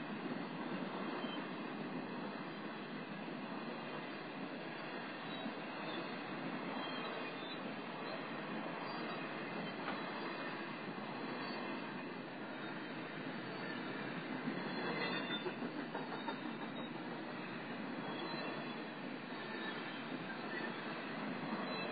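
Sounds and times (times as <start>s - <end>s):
train wheels on rails: 0.0s - 21.9s.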